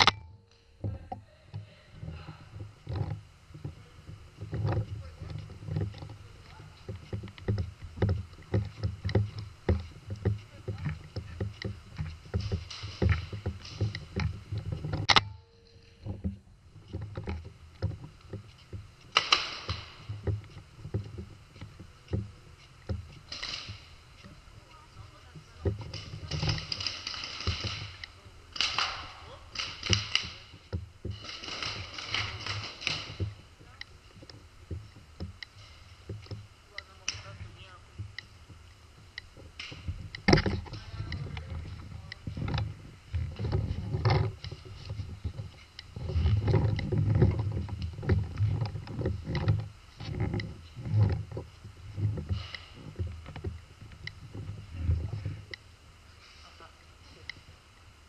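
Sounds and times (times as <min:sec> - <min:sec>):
camera handling knocks and rattling: 0:06.9 - 0:24.3, 0:25.6 - 0:28.8, 0:38.0 - 0:54.6.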